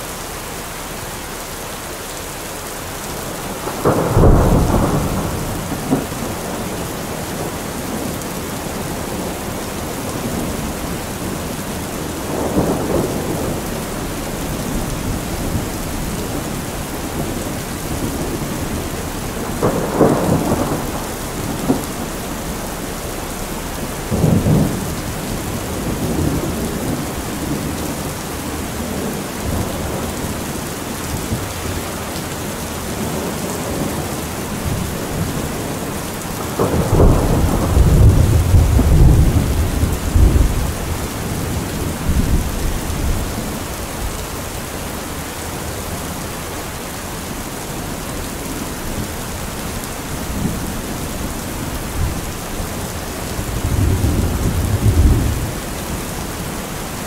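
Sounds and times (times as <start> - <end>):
heavy rain falling: 0.0 - 57.0
thunder cracks and rumble: 3.5 - 30.5, 32.9 - 44.1, 50.1 - 56.0.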